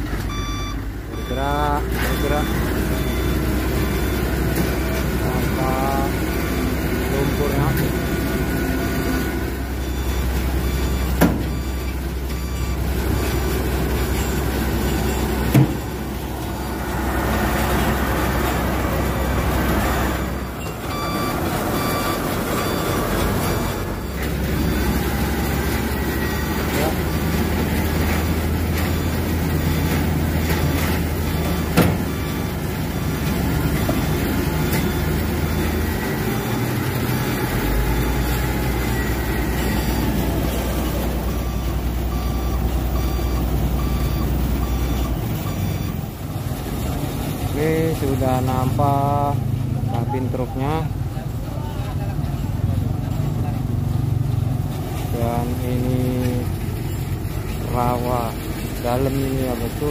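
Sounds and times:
diesel engine under load: 0.0s - 59.9s
reversing beeper: 0.3s - 50.9s, 55.0s - 59.9s.

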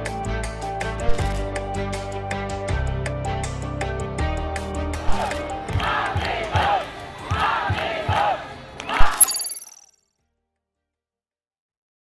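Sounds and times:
crowd chanting slogan: 5.7s - 9.0s.

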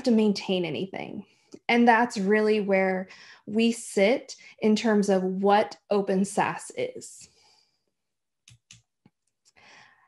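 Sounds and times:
faint soft breath: 7.2s - 7.9s, 9.5s - 10.0s.

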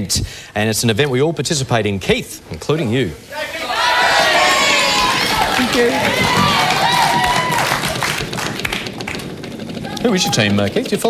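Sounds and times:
prize wheel ticking: 7.1s - 11.0s.

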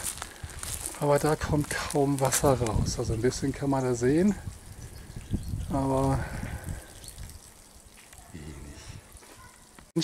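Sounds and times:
faint water dripping and trickling: 3.4s - 10.0s.

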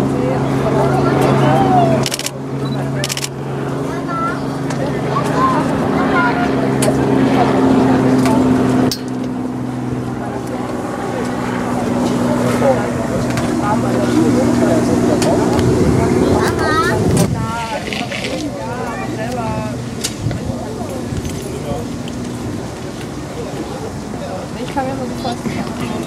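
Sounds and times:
indistinct distant voices: 0.0s - 26.0s.

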